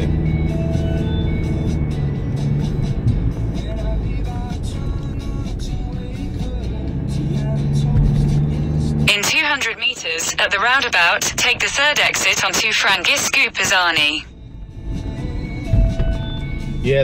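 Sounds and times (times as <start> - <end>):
car engine and road noise: 0.0 - 17.0
music over car audio system: 0.0 - 17.0
navigation voice prompt: 9.1 - 14.2.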